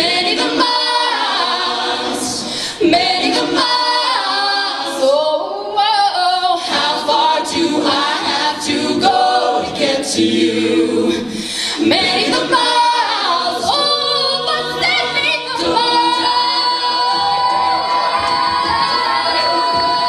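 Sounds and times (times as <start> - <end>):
a cappella group singing: 0.0 - 20.0
female lead voice singing: 13.6 - 20.0.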